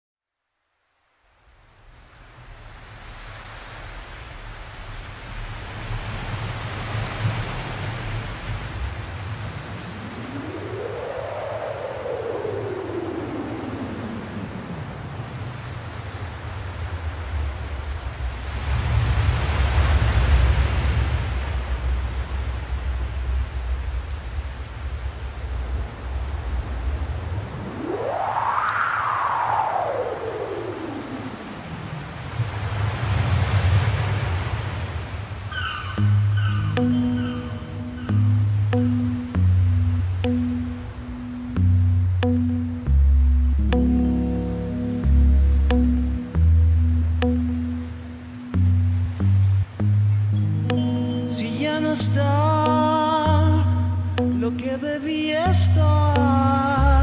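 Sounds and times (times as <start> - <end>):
ocean surf rushing: 1.4 - 57.0.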